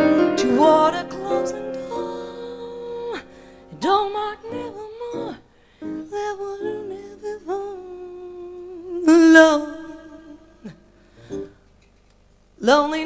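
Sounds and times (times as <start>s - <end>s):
woman singing jazz melody: 0.0s - 10.8s, 12.6s - 13.0s.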